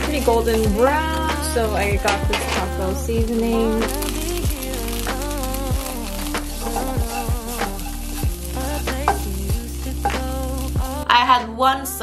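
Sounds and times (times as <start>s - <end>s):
tofu sizzling in a wok: 0.0s - 11.0s
wooden spatula stirring in pan: 0.0s - 11.0s
background music with deep beat: 0.0s - 11.2s.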